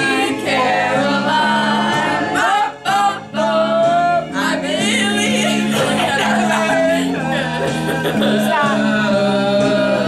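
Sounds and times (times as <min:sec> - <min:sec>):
backing track with guitar: 0:00.0 - 0:10.0
person singing into a microphone: 0:00.0 - 0:10.0.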